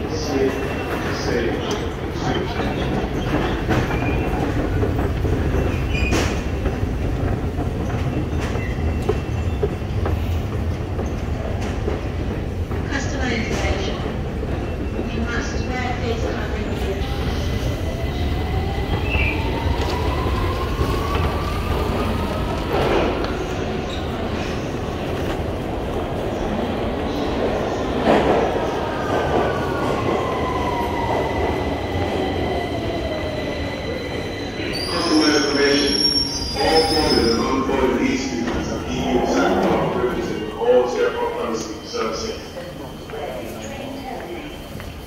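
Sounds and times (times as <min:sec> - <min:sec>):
rising train whine: 0:00.0 - 0:45.0
train rumble: 0:00.0 - 0:45.0.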